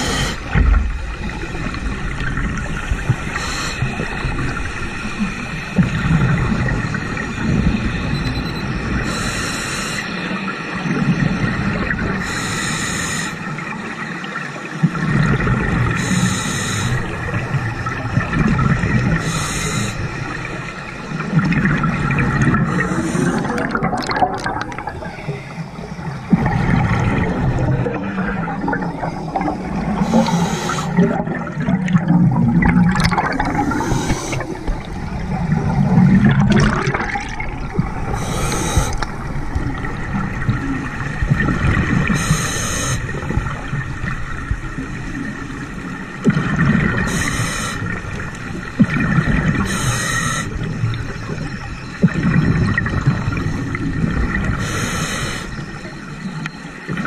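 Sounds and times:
regulator hissing inhale: 0.0s - 0.6s, 3.3s - 4.2s, 9.0s - 10.3s, 12.2s - 13.5s, 16.0s - 17.2s, 19.1s - 20.4s, 22.6s - 23.6s, 30.0s - 31.0s, 33.6s - 34.9s, 38.1s - 39.1s, 42.0s - 43.2s, 47.0s - 48.0s, 49.6s - 50.7s, 54.5s - 55.9s
bubbling gurgling exhale: 14.9s - 55.9s.

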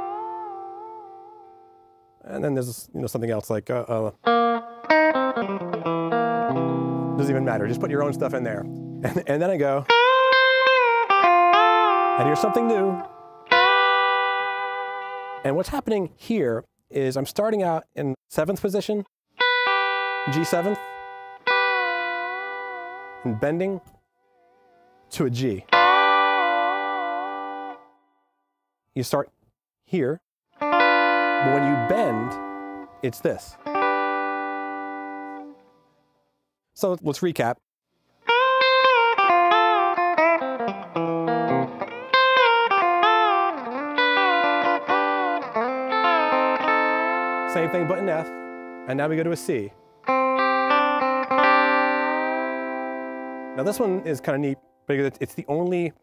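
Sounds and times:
electric guitar chord ringing: 0.0s - 2.2s, 4.2s - 15.4s, 19.4s - 23.8s, 25.7s - 27.8s, 30.6s - 35.6s, 38.3s - 54.5s.

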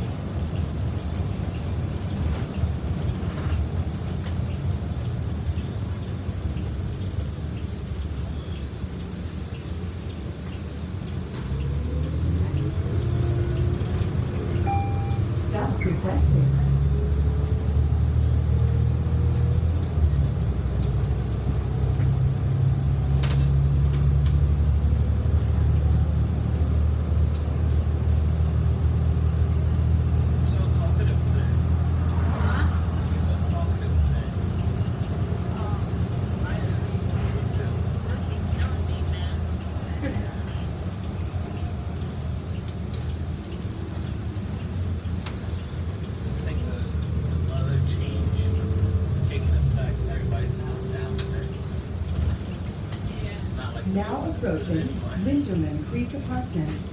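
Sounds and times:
bus engine droning: 0.0s - 56.9s
bus interior rattles: 0.0s - 56.9s.

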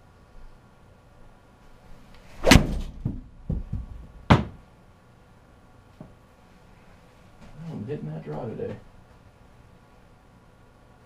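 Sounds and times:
ball smacking into impact screen: 2.4s - 4.6s
soft thuds: 2.4s - 4.6s.

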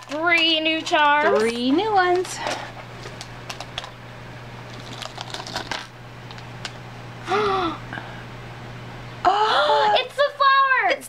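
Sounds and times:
plastic packet crinkling: 0.0s - 4.0s, 4.6s - 6.8s.

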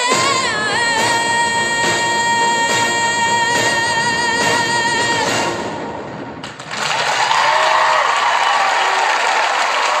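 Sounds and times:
audience applauding: 6.4s - 10.0s
voices cheering: 7.0s - 10.0s.

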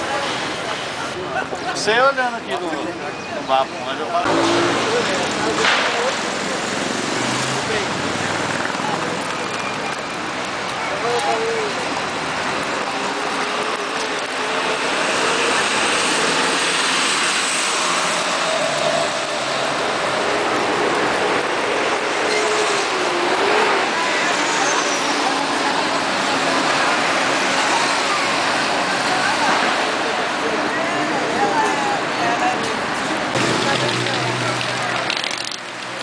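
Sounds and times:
traffic noise: 0.0s - 36.0s
voices of passers-by: 0.0s - 36.0s.

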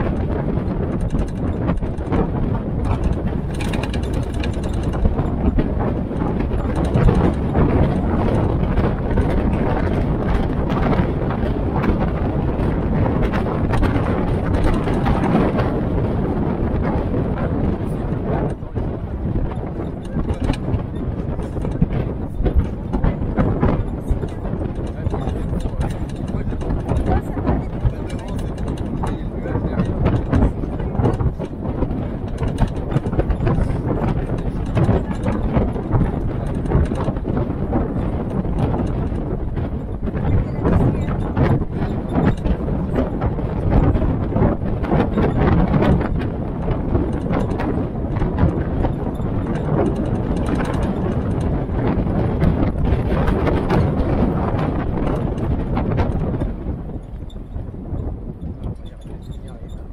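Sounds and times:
bodywork knocks and rattles: 0.0s - 59.9s
jeep engine under load: 0.0s - 59.9s
wind and road noise: 0.0s - 59.9s.

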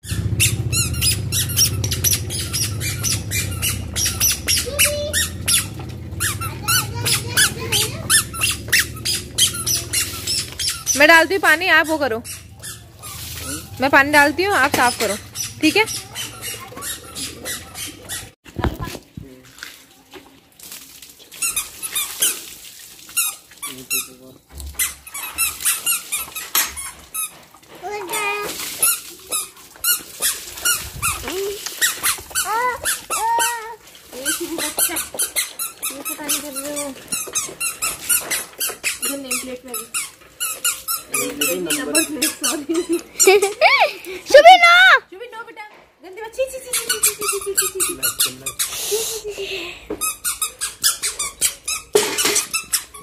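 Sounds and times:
squeaking squeals: 0.0s - 18.4s, 23.2s - 27.4s, 34.6s - 43.1s, 50.0s - 53.0s
wet cloth rubbing painted metal: 0.0s - 18.4s, 21.3s - 43.6s.

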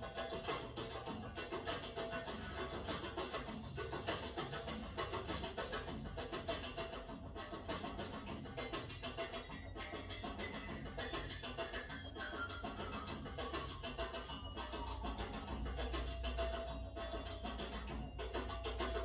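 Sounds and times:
music with a steady beat: 0.0s - 19.0s.

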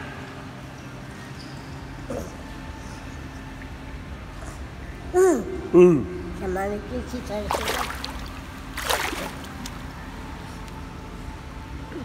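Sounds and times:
steady low hum: 0.0s - 12.0s
water lapping against buoy: 7.4s - 10.0s.

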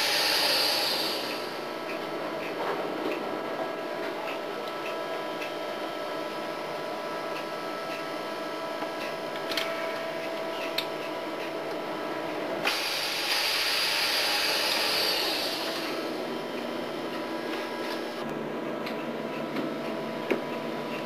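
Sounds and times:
loud hiss: 0.0s - 1.4s, 12.7s - 16.0s
boat machinery drone with whine: 0.0s - 21.0s.

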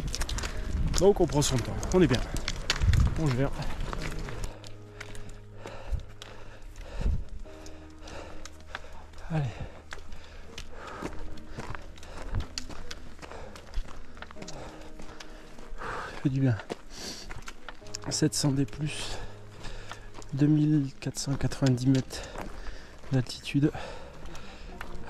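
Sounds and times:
footsteps on gravel trail: 0.0s - 25.0s
soft music of held chords: 0.0s - 25.0s.

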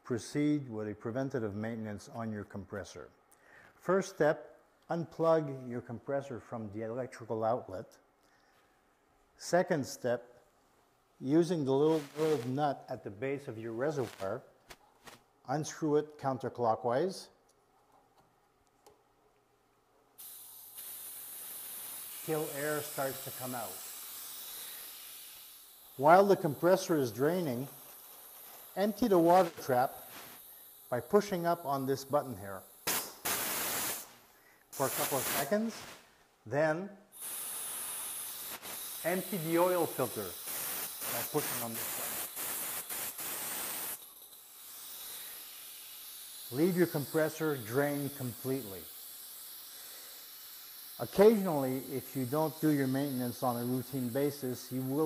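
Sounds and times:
compressed air hissing: 11.4s - 14.4s, 20.2s - 36.2s, 37.0s - 55.0s.

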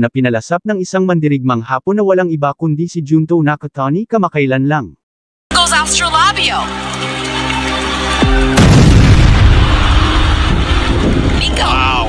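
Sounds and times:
loud deep boom rumble: 8.5s - 12.0s.

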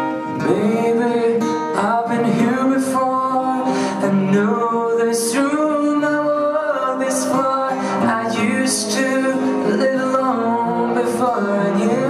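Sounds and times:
acoustic guitar: 0.0s - 12.0s
man singing a slow ballad: 0.3s - 12.0s.

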